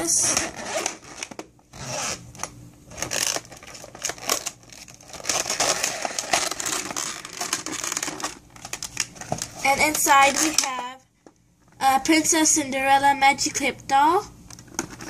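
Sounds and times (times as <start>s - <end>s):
zipper being pulled open: 0.1s - 2.2s
plastic bag crinkling: 2.9s - 11.0s.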